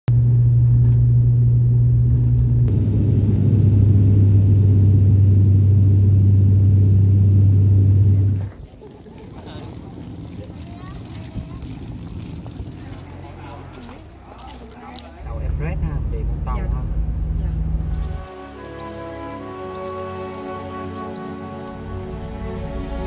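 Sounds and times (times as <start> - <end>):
aircraft engines droning in cabin: 0.3 - 8.6
outdoor background noise: 2.3 - 23.0.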